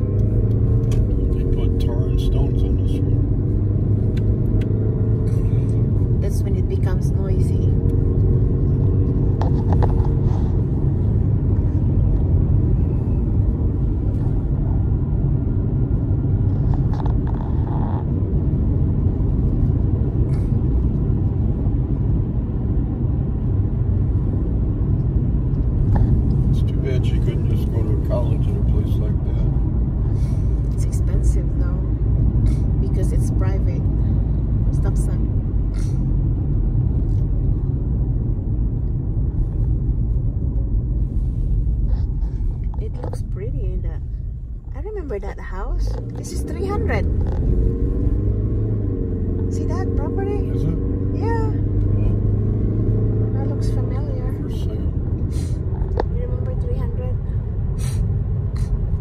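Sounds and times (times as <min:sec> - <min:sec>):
car driving rumble from inside: 0:00.0 - 0:59.0.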